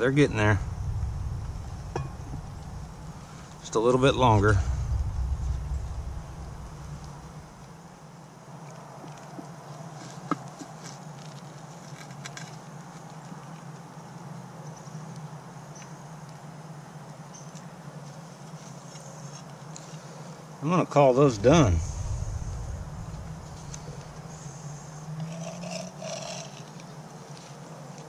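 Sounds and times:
low rumble: 0.0 - 7.8, 21.3 - 25.2
faint low hum: 0.0 - 9.9, 21.1 - 28.0.

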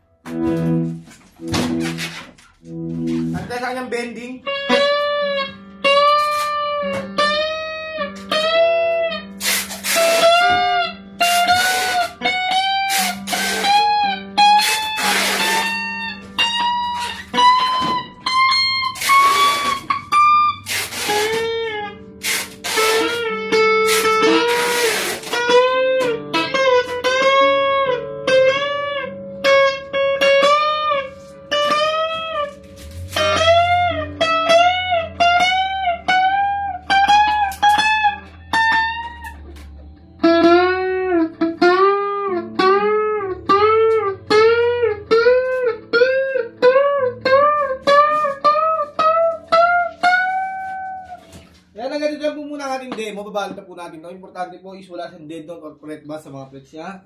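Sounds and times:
electric guitar strummed chords: 0.0 - 51.8
electric guitar bent notes: 0.0 - 53.2.

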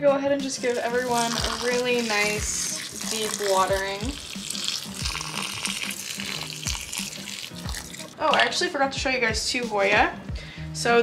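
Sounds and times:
water pouring from watering can: 0.5 - 8.4.

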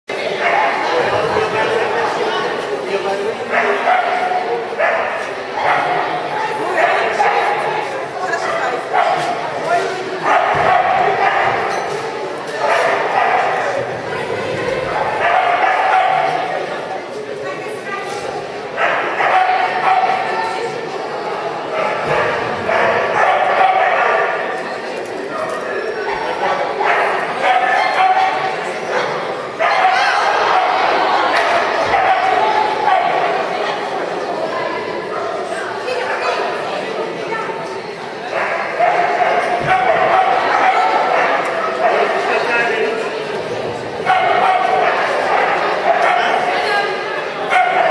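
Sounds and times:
people's voices: 0.1 - 47.9
dog barking: 3.5 - 6.0, 8.8 - 9.4, 10.2 - 11.8, 12.6 - 13.8, 15.0 - 16.5, 18.8 - 20.3, 21.8 - 24.6, 26.8 - 30.8, 31.4 - 33.4, 38.3 - 42.4, 44.0 - 46.6, 47.4 - 47.9.

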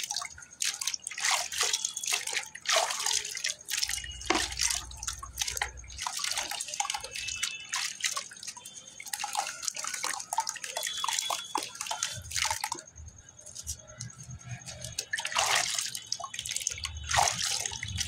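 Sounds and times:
water drips and splashes: 0.0 - 18.0
wet clay squeezed by hand: 0.0 - 18.0.

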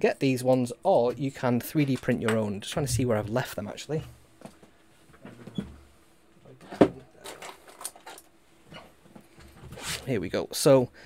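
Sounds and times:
knocks and clicks of objects moved: 6.6 - 10.0.

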